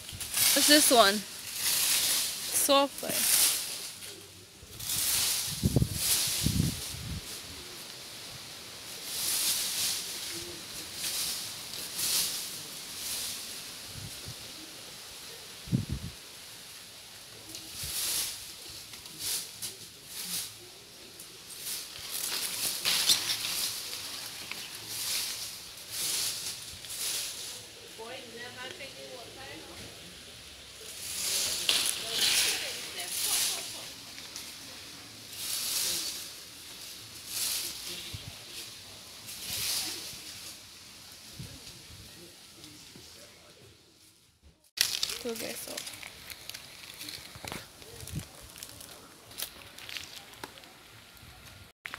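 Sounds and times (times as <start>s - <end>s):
footsteps on dry leaves: 0.0s - 7.8s, 17.4s - 27.9s, 30.8s - 41.6s, 44.7s - 51.9s.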